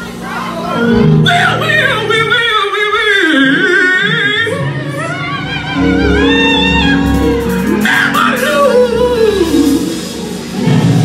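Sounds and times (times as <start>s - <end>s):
live band playing: 0.0s - 11.0s
man singing gospel: 0.4s - 10.2s.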